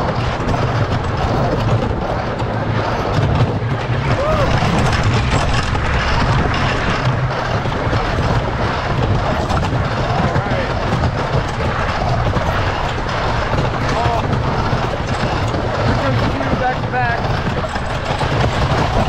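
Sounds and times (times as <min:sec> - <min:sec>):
roller coaster wheels rumbling on track: 0:00.0 - 0:19.0.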